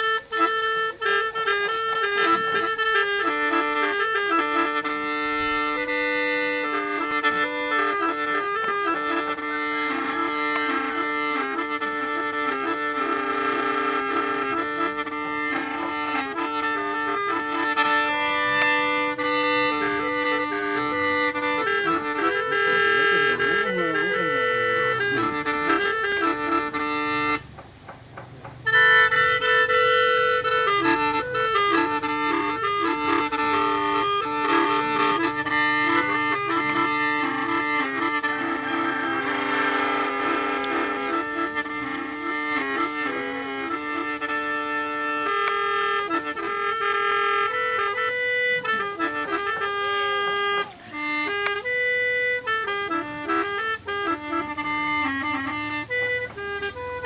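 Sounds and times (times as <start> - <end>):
gourd mouth organ chords: 0.0 - 27.4, 28.6 - 57.0.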